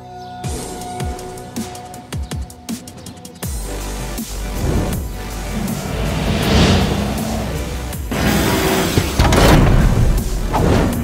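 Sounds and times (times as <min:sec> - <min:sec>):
electronic action music: 0:03.5 - 0:10.1
whoosh: 0:04.4 - 0:08.8.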